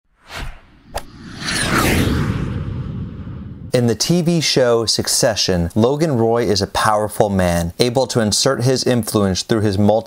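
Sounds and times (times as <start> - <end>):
falling swish: 0.1 - 4.0
whoosh: 0.1 - 4.4.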